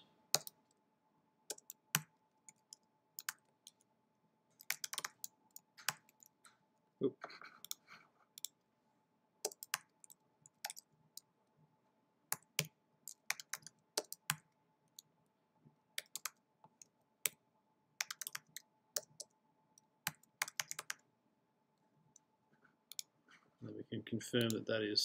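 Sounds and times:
computer keyboard typing: 0.3 - 0.6, 1.5 - 3.8, 4.6 - 6.3, 9.4 - 10.9, 12.3 - 14.5, 16.0 - 16.4, 18.0 - 19.3, 20.1 - 21.0.

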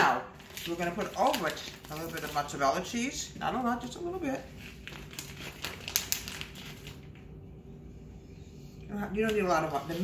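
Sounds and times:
plastic bag crinkling: 0.0 - 7.3.

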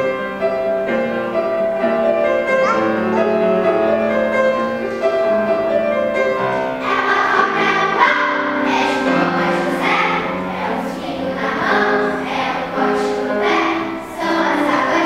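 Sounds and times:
piano accompaniment: 0.0 - 15.0
children's choir singing: 2.8 - 15.0.

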